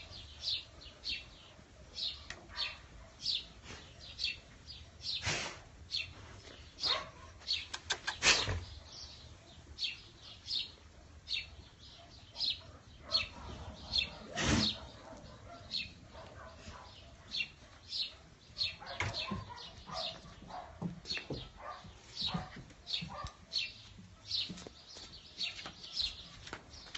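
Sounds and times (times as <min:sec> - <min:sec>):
dog barking: 0:02.1 - 0:03.4, 0:06.8 - 0:07.4, 0:11.9 - 0:20.9, 0:21.6 - 0:24.4.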